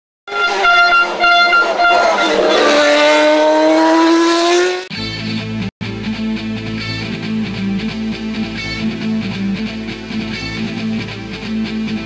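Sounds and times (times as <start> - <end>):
race car engine at high revs: 0.3 - 4.9.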